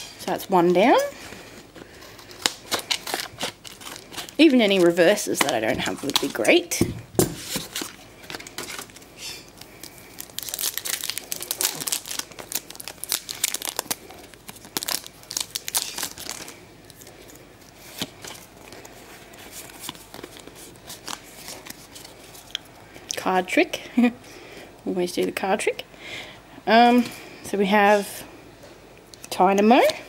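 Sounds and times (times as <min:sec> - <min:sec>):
foil wrapper crinkling and tearing: 0:00.3 - 0:06.6, 0:07.4 - 0:22.6.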